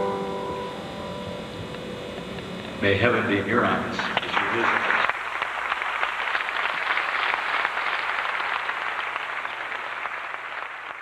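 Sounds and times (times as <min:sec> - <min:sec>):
audience applauding: 0:04.0 - 0:11.0.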